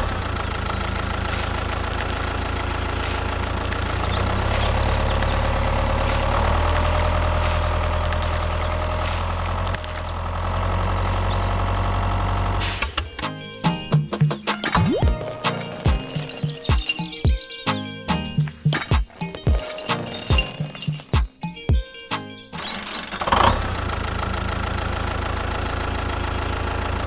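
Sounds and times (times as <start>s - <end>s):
tractor engine droning: 0.0s - 14.1s, 14.8s - 17.2s, 19.3s - 21.2s, 22.3s - 27.0s.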